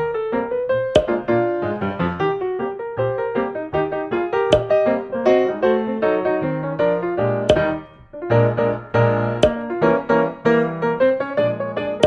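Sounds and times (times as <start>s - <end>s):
sharp short hit: 4.6s - 4.8s.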